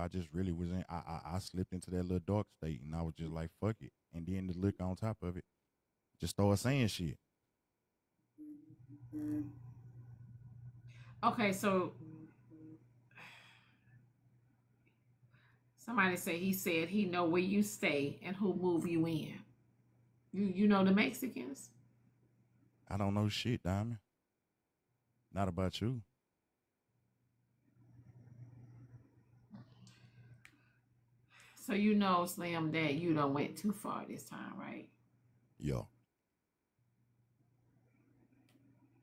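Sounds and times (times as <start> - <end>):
faint low hum: 0.0 - 5.5, 6.2 - 7.2, 8.4 - 24.1, 27.6 - 35.9
low hum: 8.4 - 13.2.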